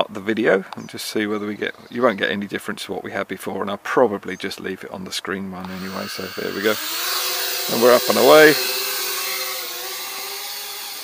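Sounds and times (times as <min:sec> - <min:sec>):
toy drone propellers whining: 0:05.7 - 0:11.0.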